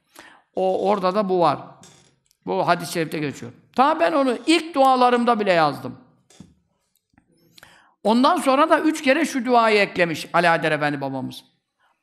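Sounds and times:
faint breath: 0.0 - 0.5, 7.4 - 8.0.

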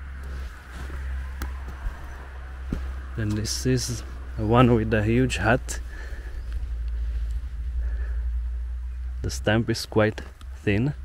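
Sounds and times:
light rustles: 5.7 - 8.2.

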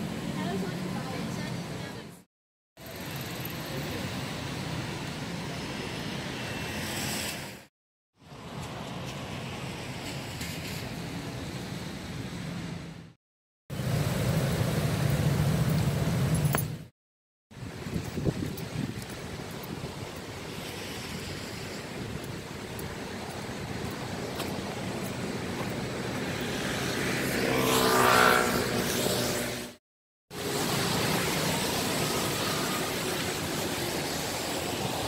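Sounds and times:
traffic engines: 0.0 - 2.2, 2.8 - 13.1, 13.8 - 16.9, 17.6 - 29.8, 30.4 - 35.0
tyre hiss on wet road: 18.8 - 24.8, 30.4 - 35.0
road vehicle passing by: 24.2 - 29.8.

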